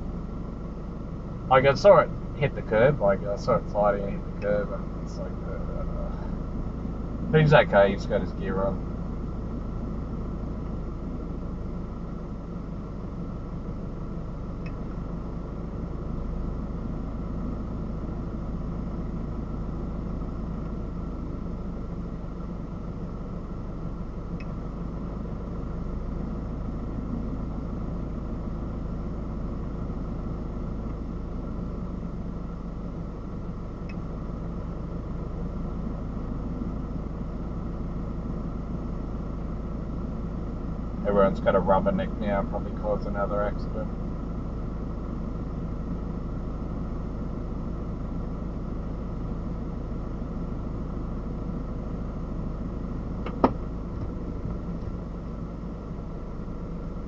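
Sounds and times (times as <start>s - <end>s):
car idling heard from cabin: 0.0s - 57.0s.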